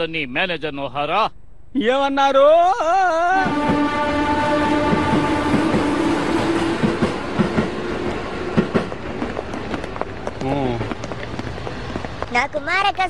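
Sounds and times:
train wheels clacking on rails: 3.4 - 13.0.

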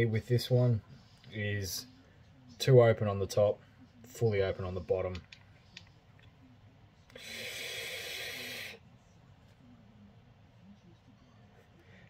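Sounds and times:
airy hiss of inhaled air: 7.2 - 8.8.

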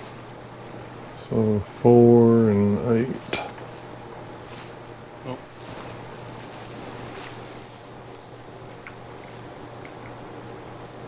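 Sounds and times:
low electrical machinery hum: 0.0 - 11.0.

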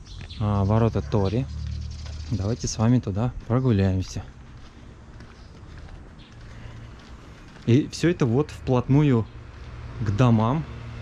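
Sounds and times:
footsteps on paved path: 0.0 - 10.3
quiet outdoor background noise: 0.0 - 11.0.

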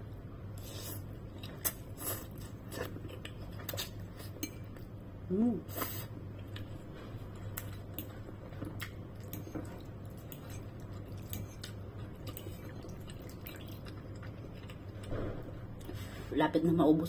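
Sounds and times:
steady low hum: 0.0 - 17.0
person chewing noodles: 0.6 - 4.8, 5.8 - 15.1.

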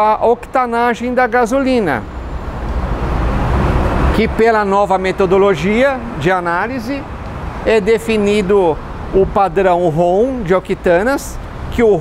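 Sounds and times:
passing road vehicle rumbling: 0.8 - 12.0.

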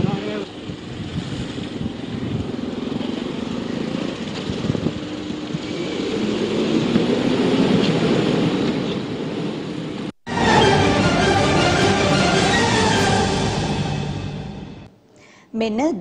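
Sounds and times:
street traffic: 0.0 - 14.9.

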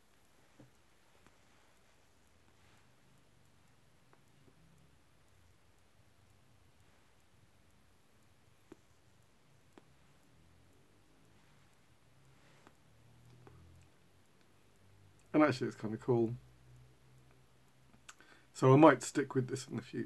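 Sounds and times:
faint clicks: 12.6 - 14.6, 17.3 - 18.3.

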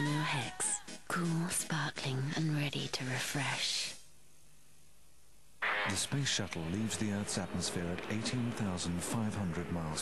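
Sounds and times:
man speaking voiceover: 5.8 - 10.0.

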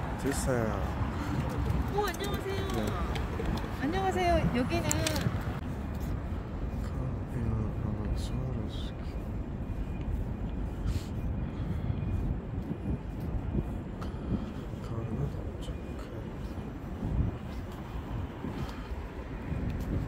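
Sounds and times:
low traffic rumble: 0.0 - 20.0
voices of passersby: 0.0 - 20.0.

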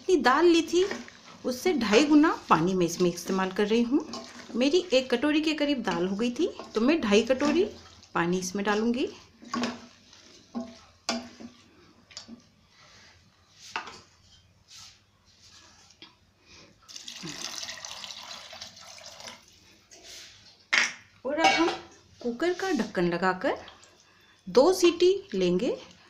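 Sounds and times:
water pouring into pot: 16.9 - 19.6.

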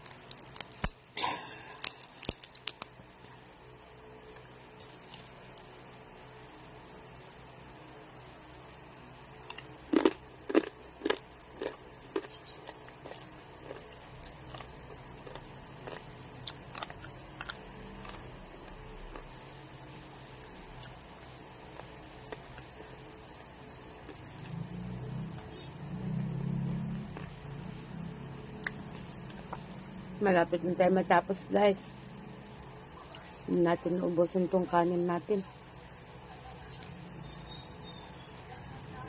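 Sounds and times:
person chewing crunchy food: 0.0 - 3.6, 9.4 - 22.8, 24.0 - 25.7, 26.9 - 27.6, 28.5 - 29.8.

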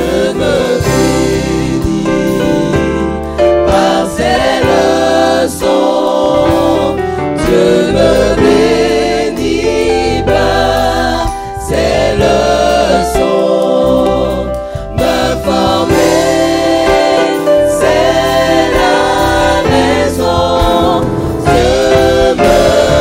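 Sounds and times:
choir singing a hymn: 0.0 - 23.0.

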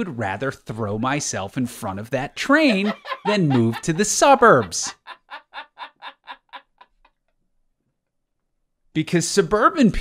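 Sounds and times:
person laughing: 2.4 - 7.1.

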